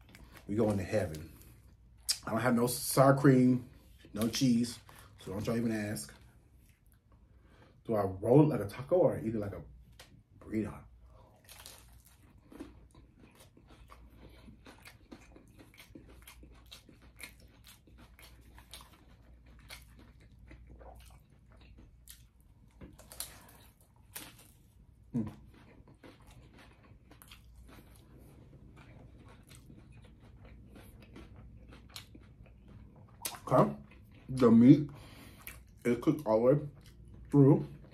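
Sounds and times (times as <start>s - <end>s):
crunchy chewing: 11.0s - 37.9s.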